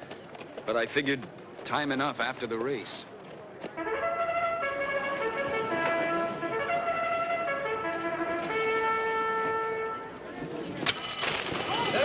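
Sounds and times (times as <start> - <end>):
trumpet melody: 3.8 - 10.2.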